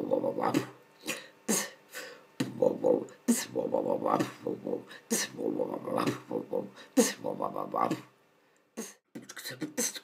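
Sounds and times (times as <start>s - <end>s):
beatboxing: 0.0s - 1.8s, 2.4s - 8.1s, 8.8s - 10.0s.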